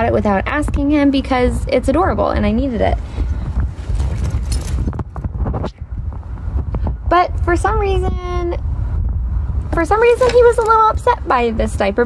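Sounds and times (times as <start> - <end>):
wind rumble on microphone: 0.0 - 12.0
bag handling knocks and rustles: 3.8 - 5.4.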